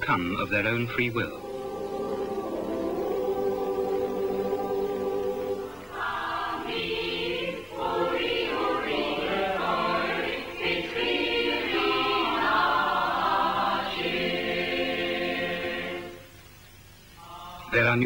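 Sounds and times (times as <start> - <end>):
choir singing sustained chords: 0.1 - 18.0.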